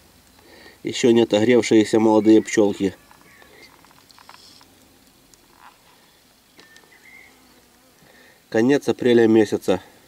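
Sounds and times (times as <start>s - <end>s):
faint high chirps: 1.8s - 7.7s.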